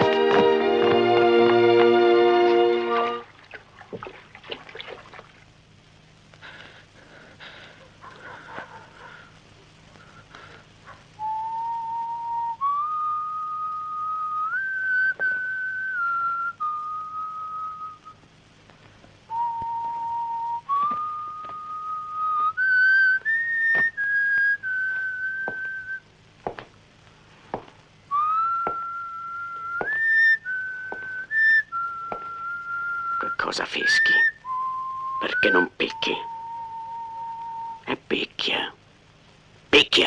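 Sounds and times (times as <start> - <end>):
person whistling a slow tune: 11.2 - 18.2, 19.3 - 26.0, 28.1 - 37.8.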